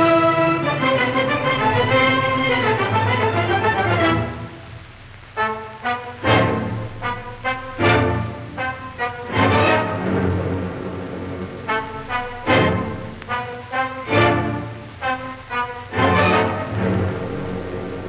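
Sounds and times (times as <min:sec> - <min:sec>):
orchestral film score: 0:00.0 - 0:04.8, 0:05.4 - 0:18.0.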